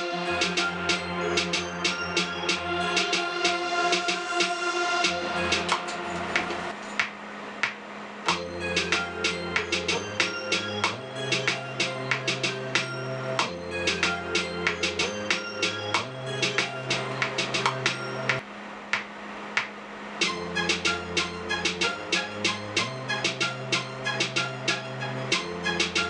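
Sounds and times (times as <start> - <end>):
programmed clap and snare hits: 1.4 - 21.0.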